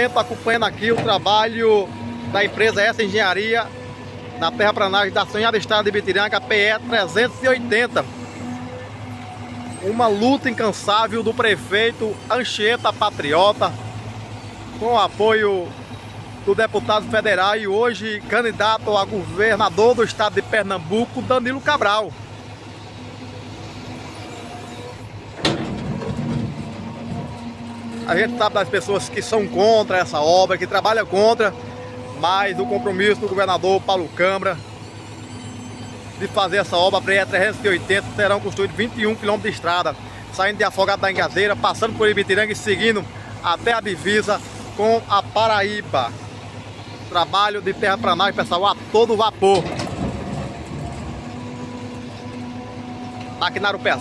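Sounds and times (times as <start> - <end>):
excavator diesel engine running: 0.0 - 54.0
excavator digging: 0.0 - 54.0.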